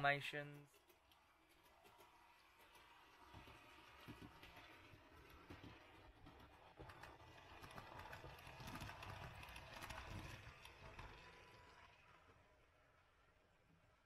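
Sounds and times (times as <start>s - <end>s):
model train running on track: 0.0s - 14.0s.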